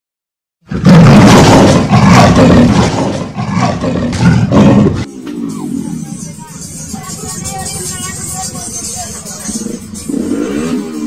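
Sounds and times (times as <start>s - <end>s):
loud roar: 0.7s - 5.9s, 10.0s - 11.0s.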